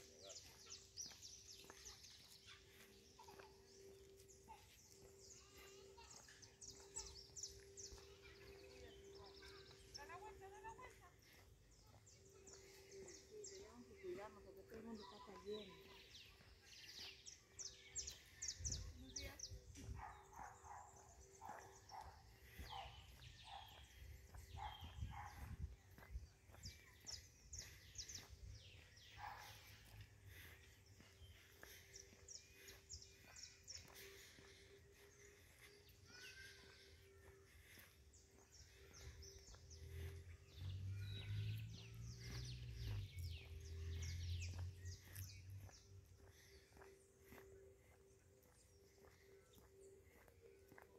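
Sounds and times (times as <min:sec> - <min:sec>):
small birds chirping: 0:00.0 - 0:50.9.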